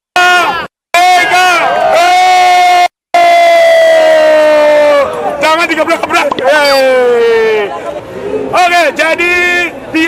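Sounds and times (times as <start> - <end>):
crowd long held yell: 0.2 - 5.4
crowd shouting: 0.2 - 8.5.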